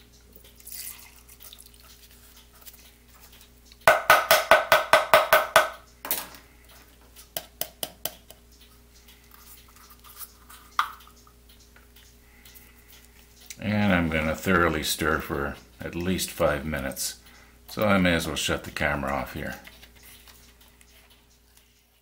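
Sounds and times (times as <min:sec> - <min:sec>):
plastic cup tapping on cup rim: 0:03.9 - 0:05.7
plastic cup knock: 0:03.9 - 0:05.8.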